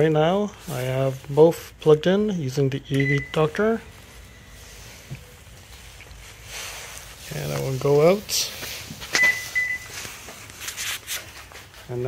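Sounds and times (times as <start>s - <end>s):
high electronic beep: 2.9s - 4.7s, 9.2s - 9.9s
faint handling noise: 4.0s - 12.0s.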